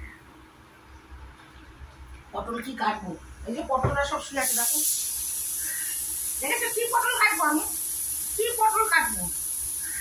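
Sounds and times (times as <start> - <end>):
steady high-pitched hiss: 2.4 - 10.0.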